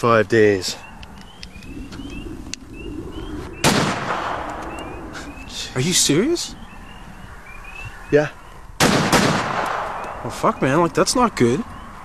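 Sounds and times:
handgun shot with echo: 3.6 - 4.6, 8.8 - 10.2.

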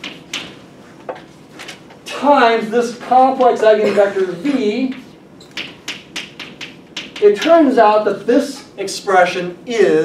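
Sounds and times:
chalk tapping on chalkboard: 0.0 - 1.3, 4.9 - 7.5.

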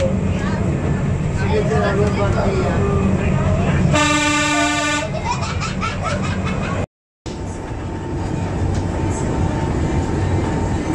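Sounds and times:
low rumble of rail car: 0.0 - 10.9
train horn blast: 3.9 - 5.1.

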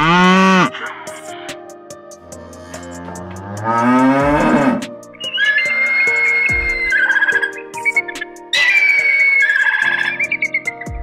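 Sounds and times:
cow mooing: 0.0 - 0.7, 3.0 - 5.7
background music: 0.0 - 11.0
hawk screaming: 4.4 - 7.6, 8.5 - 10.4.

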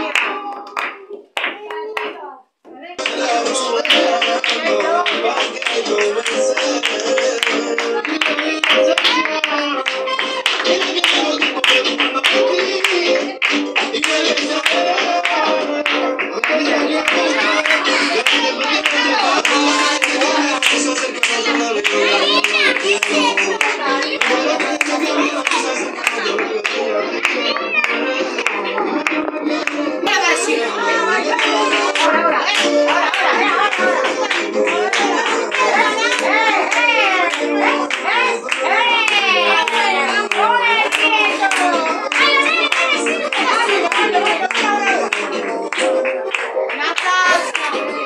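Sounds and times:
music: 0.0 - 2.2, 3.0 - 48.0
people clapping in rhythm: 0.0 - 48.0
voices: 0.0 - 48.0.

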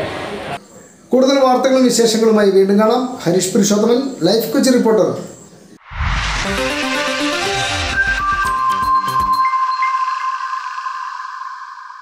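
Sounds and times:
high synth tone: 5.8 - 12.0.

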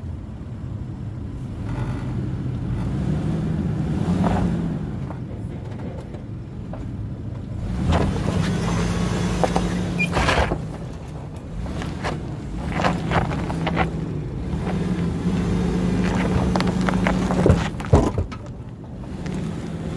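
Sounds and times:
car engine under light throttle: 0.0 - 19.9
tyres crunching over rock: 9.3 - 19.8.

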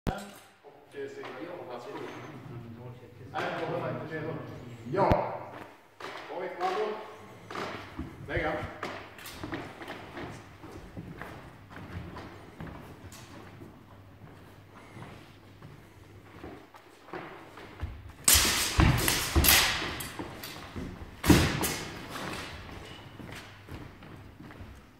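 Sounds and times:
man talking: 0.1 - 5.6, 8.2 - 8.8
footfalls on wooden floor: 5.6 - 18.2.

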